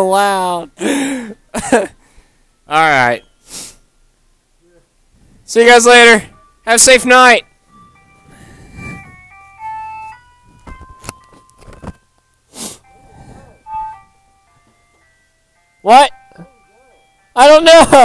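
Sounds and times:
tinny electronic tune: 0.0 - 18.0.

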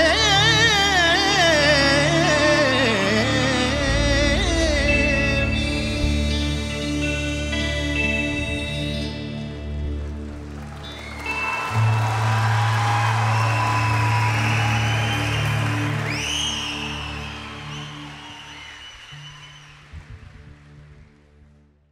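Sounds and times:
soft sustained music: 0.0 - 21.9
audience applauding and cheering: 9.6 - 21.4
whistle: 10.8 - 20.0.

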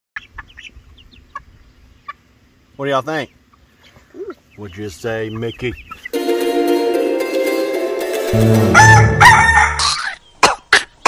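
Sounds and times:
hens clucking and chirping: 0.2 - 6.4, 8.3 - 11.0.

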